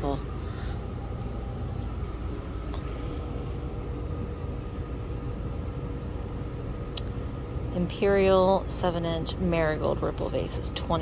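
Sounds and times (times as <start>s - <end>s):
faint steady hum: 0.0s - 11.0s
low room rumble: 0.0s - 11.0s.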